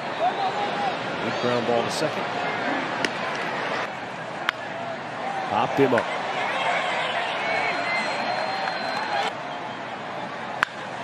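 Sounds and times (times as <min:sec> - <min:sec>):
crowd murmur: 0:00.0 - 0:11.0
bat hitting baseball: 0:10.6 - 0:10.8.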